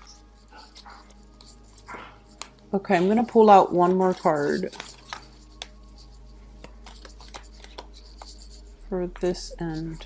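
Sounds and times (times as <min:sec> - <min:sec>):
cards ticking and rubbing: 0:00.0 - 0:10.0.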